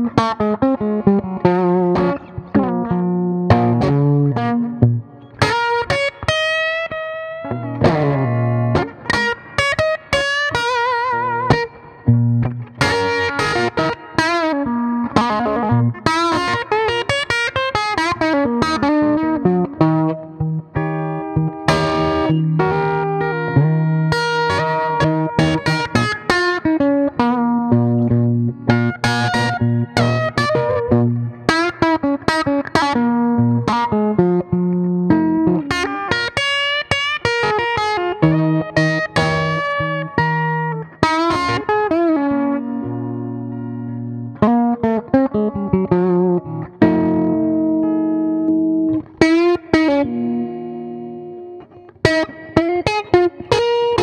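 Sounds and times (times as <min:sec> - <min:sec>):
electric guitar single-note lines: 0:00.0 - 0:54.0
electric guitar strummed chords: 0:00.0 - 0:54.0.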